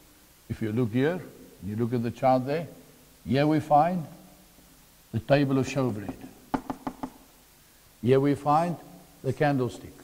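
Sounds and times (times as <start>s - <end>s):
marker tapping on flip chart: 6.0s - 7.2s.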